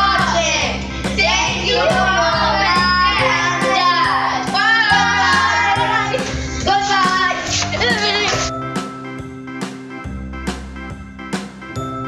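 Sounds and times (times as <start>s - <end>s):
high sung voice: 1.2s - 8.5s.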